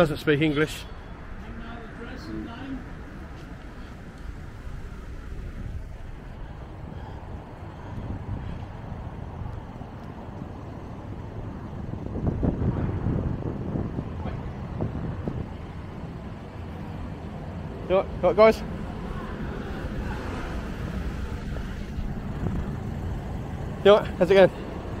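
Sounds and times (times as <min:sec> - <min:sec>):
street traffic rumble: 0:00.0 - 0:25.0
vehicle approaching: 0:00.0 - 0:25.0
wind buffeting microphone: 0:01.1 - 0:17.9, 0:18.6 - 0:23.8.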